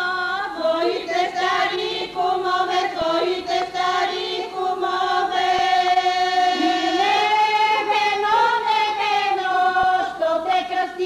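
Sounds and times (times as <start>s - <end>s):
women singing folk song: 0.0s - 11.0s.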